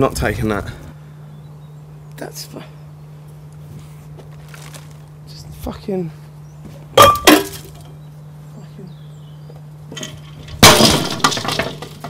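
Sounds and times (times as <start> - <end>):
shards clinking: 7.0 - 7.9, 10.0 - 12.0
brittle object crashing: 10.5 - 12.0.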